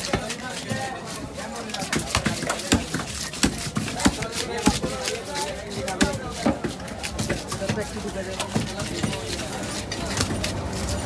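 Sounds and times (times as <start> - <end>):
knife chopping fish on wood: 0.0 - 11.0.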